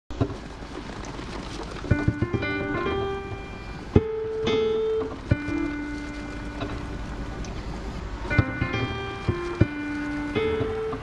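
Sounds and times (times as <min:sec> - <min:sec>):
sharp knocks: 0:01.8 - 0:03.2, 0:08.3 - 0:11.0
pipe organ music: 0:01.9 - 0:11.0.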